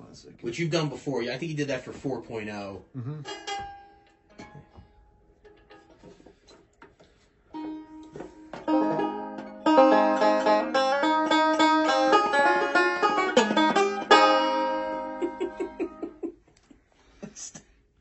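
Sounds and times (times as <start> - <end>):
banjo picking: 2.5 - 16.4.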